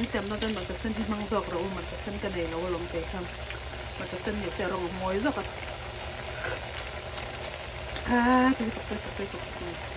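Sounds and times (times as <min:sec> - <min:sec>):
soup boiling and bubbling: 0:00.0 - 0:09.9.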